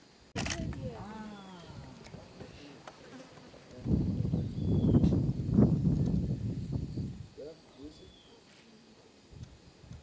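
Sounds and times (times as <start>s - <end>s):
insect buzzing: 3.1s - 10.0s.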